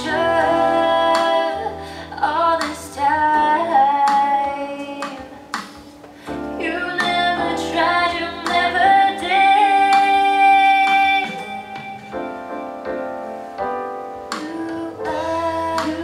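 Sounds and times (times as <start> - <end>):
woman singing r and b song: 0.0 - 5.9, 6.5 - 12.2, 14.3 - 16.0
instrumental backing: 0.0 - 16.0.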